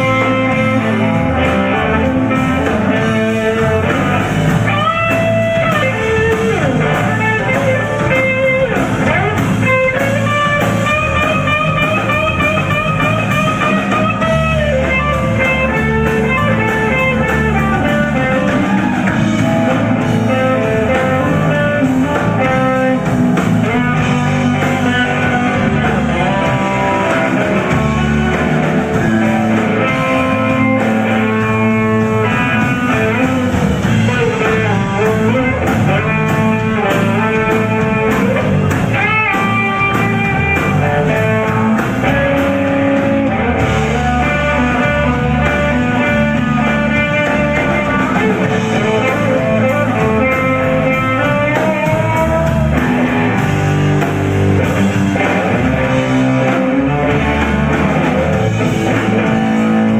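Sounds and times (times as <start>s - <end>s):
bass guitar: 0.0s - 59.9s
drum kit: 0.0s - 59.9s
electric guitar with bent notes: 0.0s - 59.9s.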